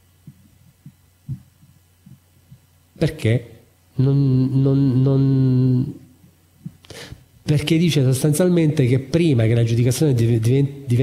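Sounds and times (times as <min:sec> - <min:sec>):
faint low hum: 0:00.0 - 0:11.0
soft low thumps: 0:00.1 - 0:02.8.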